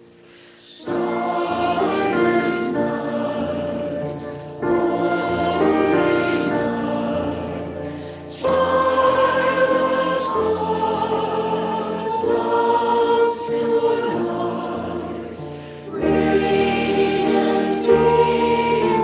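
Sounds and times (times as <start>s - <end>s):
choir singing hymn-like chords: 0.0s - 19.0s.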